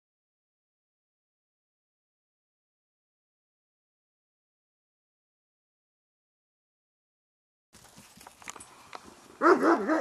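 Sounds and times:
faint background noise: 7.8 - 10.0.

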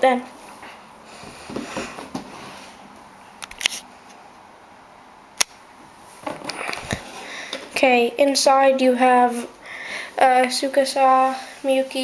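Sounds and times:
sharp click: 5.4 - 5.6.

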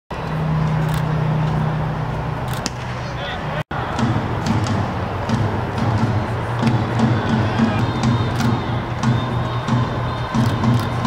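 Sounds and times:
low mechanical hum: 0.1 - 11.0.

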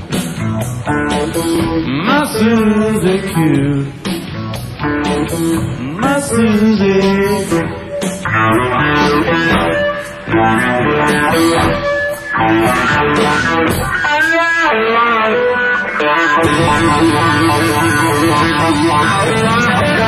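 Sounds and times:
bass guitar: 0.0 - 20.0
electric guitar lead lines: 0.0 - 20.0.

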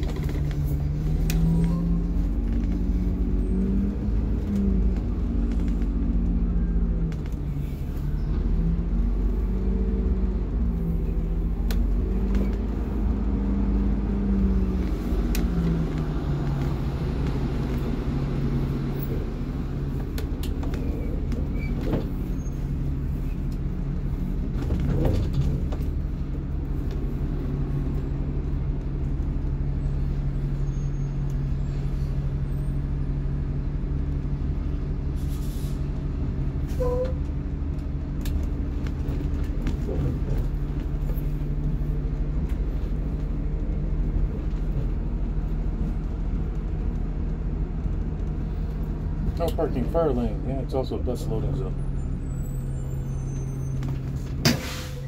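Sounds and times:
bus engine running: 0.0 - 55.0.

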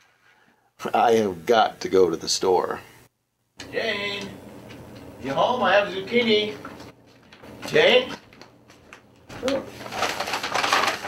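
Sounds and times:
paper bag rustling: 7.1 - 11.0.

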